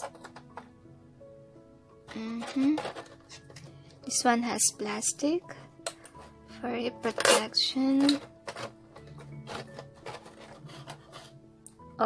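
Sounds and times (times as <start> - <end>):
faint background music: 0.0 - 12.0
plastic packaging rustling: 2.3 - 4.0, 8.1 - 11.4.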